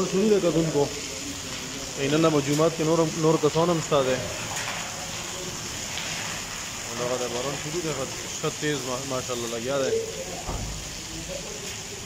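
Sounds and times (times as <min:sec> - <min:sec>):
heavy rain on concrete: 0:00.0 - 0:12.0.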